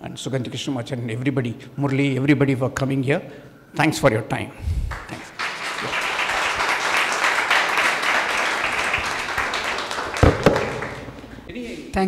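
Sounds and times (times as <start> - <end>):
audience applauding: 4.9 - 11.4
thump: 10.2 - 10.7.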